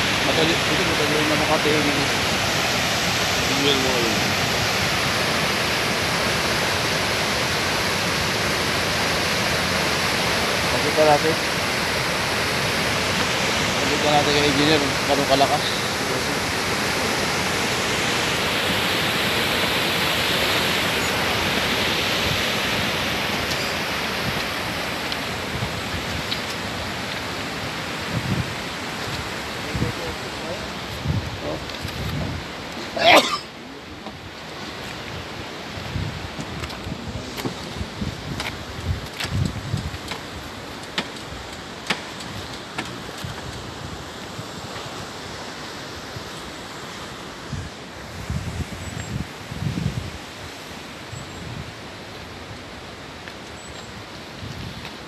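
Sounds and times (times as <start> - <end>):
floodwater rushing and churning: 0.0 - 55.0
wind knocking on microphone: 28.1 - 28.5, 31.0 - 32.4, 35.8 - 40.3.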